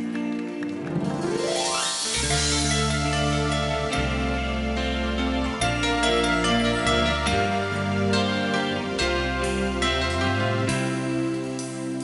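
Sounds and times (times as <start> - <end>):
keyboard chords: 0.0 - 12.0
low bass notes: 0.8 - 12.0.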